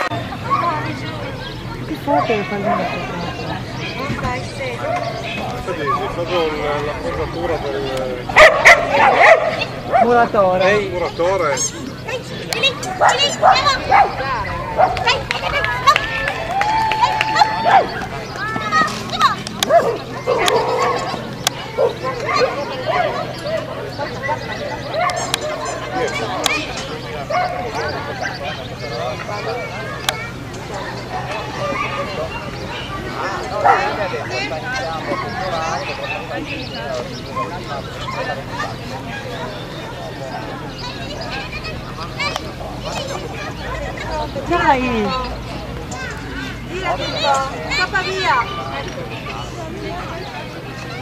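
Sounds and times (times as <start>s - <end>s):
people talking: 0.0s - 51.0s
dog barking: 8.3s - 10.2s, 12.9s - 14.2s, 14.8s - 15.1s, 19.7s - 21.1s, 33.6s - 34.0s.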